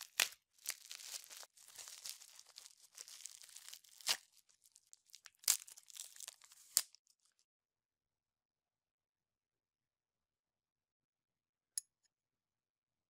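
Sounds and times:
bubble wrap snapping: 0:00.0 - 0:07.2
bubble wrap crinkling: 0:00.0 - 0:07.4.

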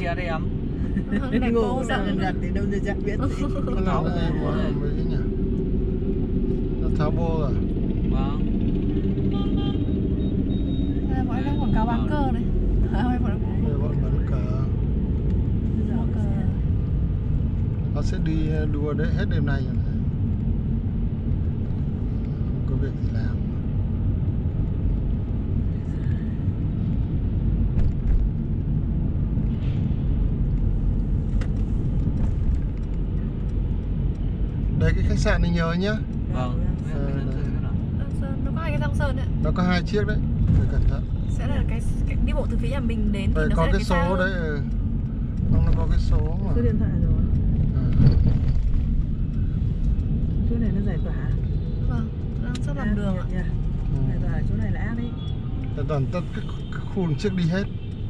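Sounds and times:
car interior driving rumble: 0:00.0 - 0:58.0
person talking: 0:01.0 - 0:04.9, 0:41.4 - 0:44.3.

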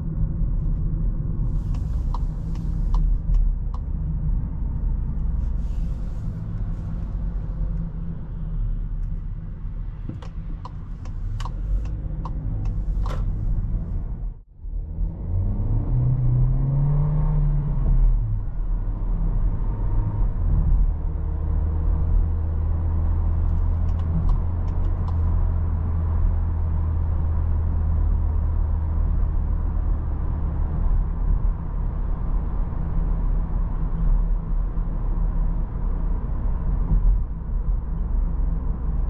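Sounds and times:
car engine accelerating and humming: 0:00.0 - 0:39.0
road noise: 0:00.0 - 0:39.0.

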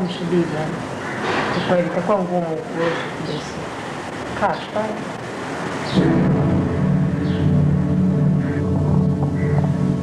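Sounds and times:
background hiss: 0:00.0 - 0:10.0
dark low synthesized drone: 0:05.9 - 0:10.0
deep rumble: 0:06.0 - 0:10.0.

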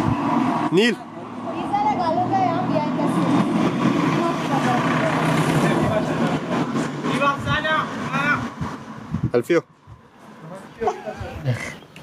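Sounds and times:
people chattering: 0:00.6 - 0:08.4, 0:10.2 - 0:12.0.

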